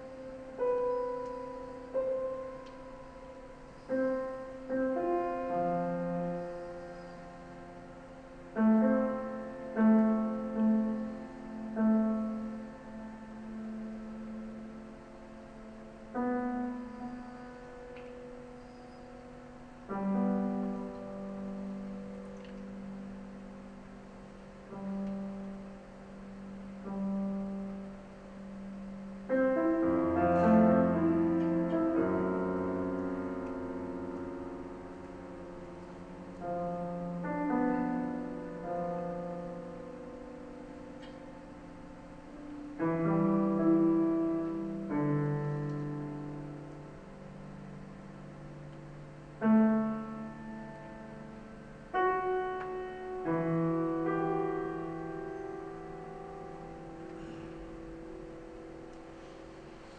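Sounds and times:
loud dense piano chord: 0.0 - 59.9
soft low piano chords: 0.0 - 59.9.

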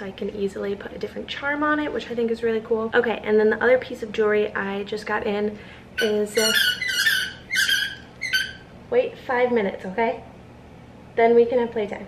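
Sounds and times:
dog whining: 6.0 - 8.7.

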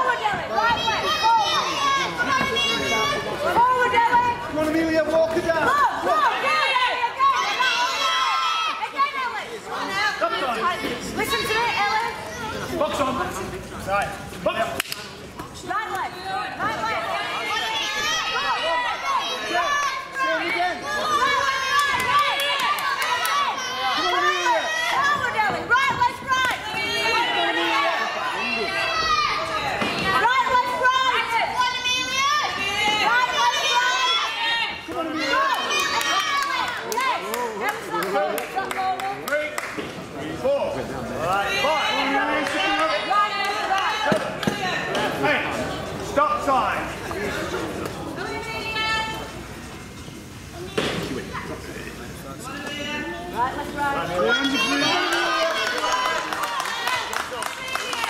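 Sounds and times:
spectators shouting: 5.5 - 10.6, 15.7 - 37.7, 54.0 - 58.0.

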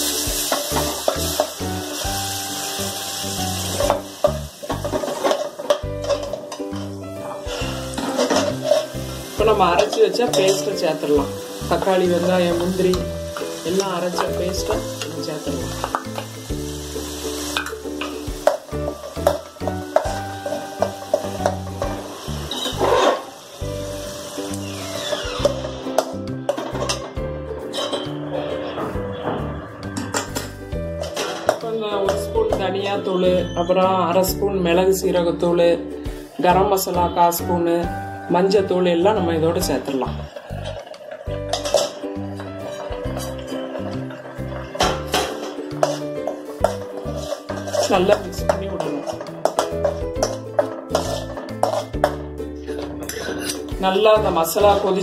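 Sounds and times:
paste frying sizzle: 0.0 - 29.0, 29.7 - 35.0, 35.8 - 55.0
background music: 0.0 - 55.0
ladle scraping and knocking pan: 0.1 - 2.6, 3.6 - 23.4, 24.0 - 32.7, 39.7 - 55.0
background music with bass line: 11.2 - 31.4.

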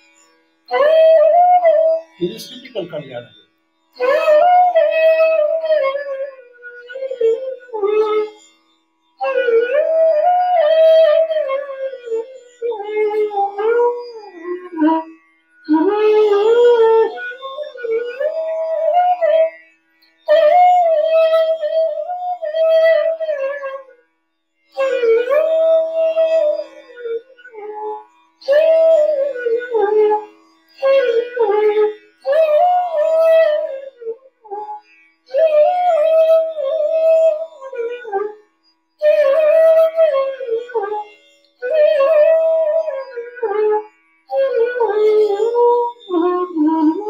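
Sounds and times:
bamboo flute melody: 0.7 - 3.4, 4.0 - 8.5, 9.2 - 19.6, 20.2 - 24.0, 24.7 - 47.0.

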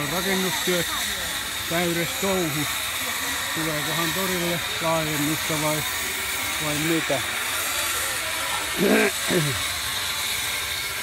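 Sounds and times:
market din: 0.0 - 10.5.

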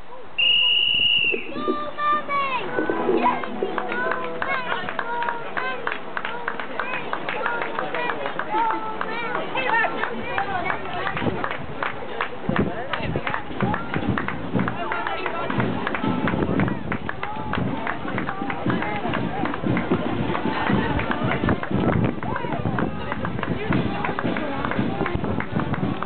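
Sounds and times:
crowd chatter: 0.0 - 26.0
music playing: 2.2 - 9.4.

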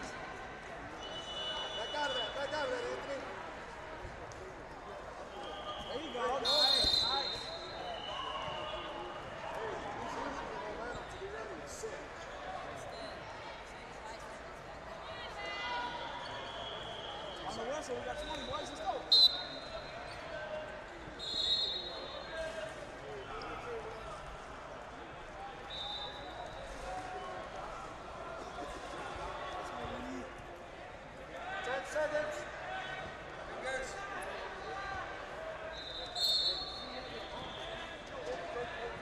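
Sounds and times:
voices and shouts in a hall: 0.0 - 39.0
short high whistle blasts: 1.0 - 2.4, 5.4 - 8.9, 19.1 - 19.7, 21.2 - 22.2, 35.8 - 37.8.

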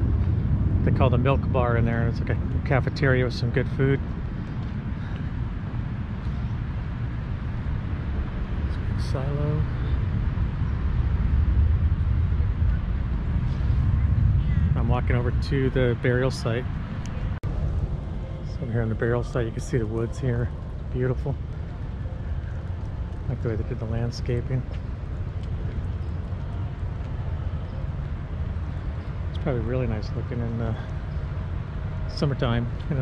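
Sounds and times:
wavering low rumble: 0.0 - 33.0.

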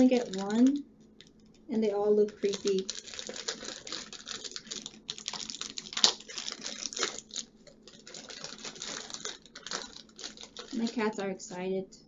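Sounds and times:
packaging crackling: 0.0 - 11.1.

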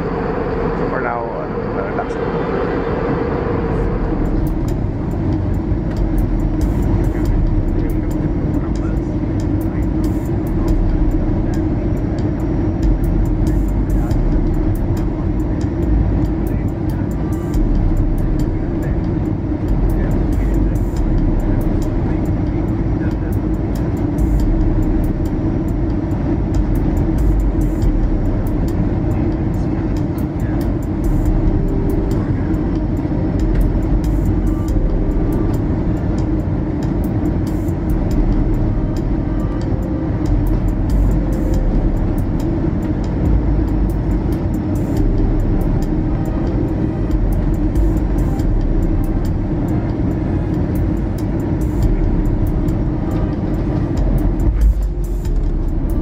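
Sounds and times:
airplane engines roaring in cabin: 0.0 - 56.0
background music: 0.0 - 56.0.

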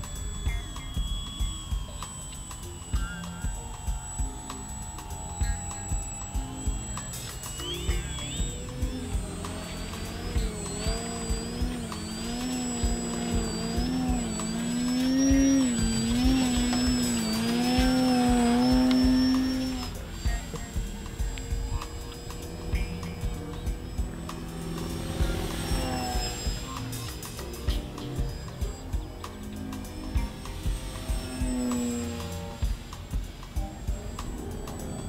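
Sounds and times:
background music with steady beat: 0.0 - 35.0
model plane electric motor whining: 0.0 - 35.0.

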